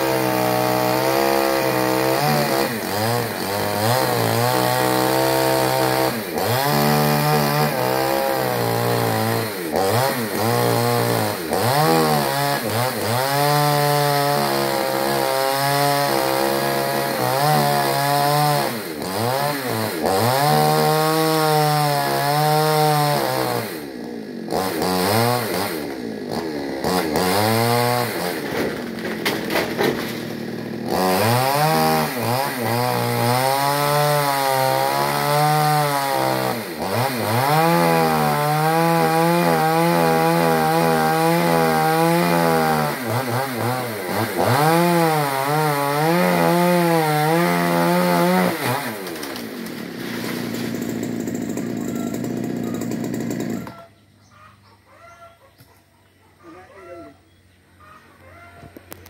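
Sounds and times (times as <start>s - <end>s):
chainsaw cutting branch: 0.0s - 53.9s.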